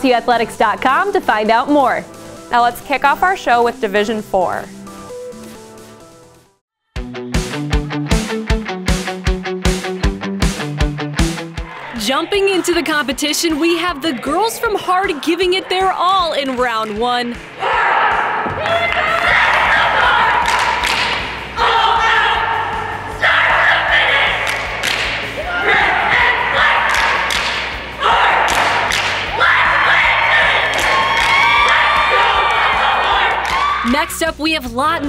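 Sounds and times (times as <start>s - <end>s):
cheer squad shouting in unison: 11.6s - 16.1s, 17.5s - 33.9s
stomps and claps: 15.3s - 22.2s, 23.4s - 33.8s.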